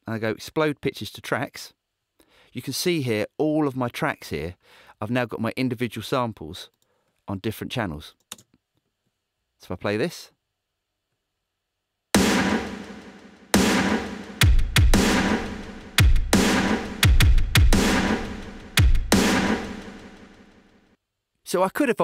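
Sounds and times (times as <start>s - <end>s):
big drum hits ringing: 12.2s - 19.9s
deep kick drum thump: 12.2s - 20.0s.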